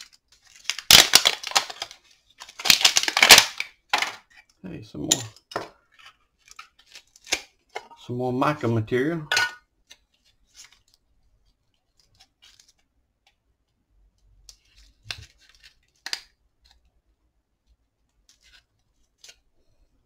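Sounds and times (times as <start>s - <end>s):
clicks and crinkles of thin sheet: 0.0s - 5.1s, 9.8s - 16.9s, 17.6s - 19.5s.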